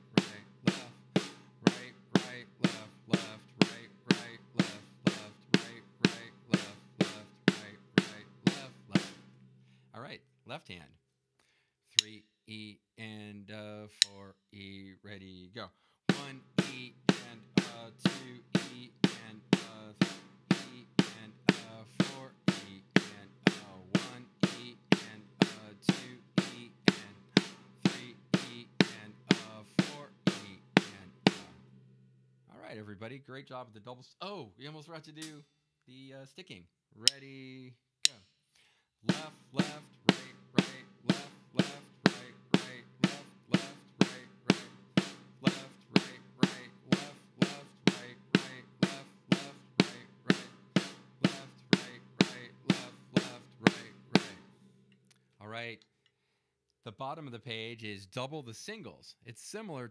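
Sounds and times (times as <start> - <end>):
drumsticks striking drum kit: 0.2 - 9.4, 16.1 - 31.6, 35.2 - 35.4, 37.1 - 37.3, 39.1 - 54.5.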